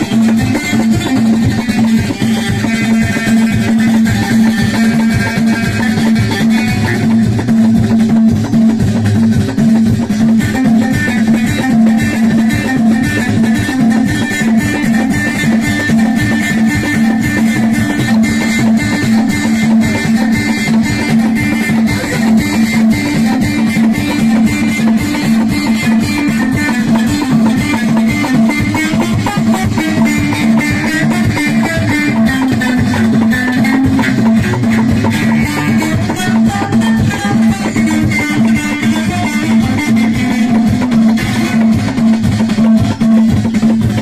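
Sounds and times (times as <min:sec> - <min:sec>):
hand drums beating: 0:00.0 - 0:44.0
plucked lute: 0:00.0 - 0:44.0.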